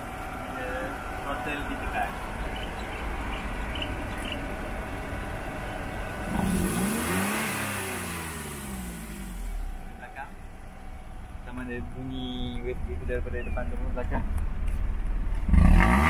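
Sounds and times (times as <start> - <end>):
car engine idling: 0.0 - 15.9
engine revving on throttle blip: 6.1 - 9.8, 15.4 - 16.0.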